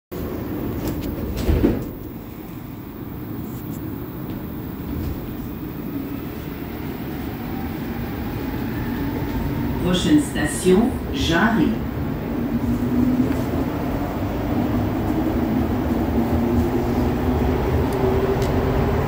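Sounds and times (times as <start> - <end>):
train rumbling: 0.1 - 19.0
train doors shutting: 0.2 - 19.0.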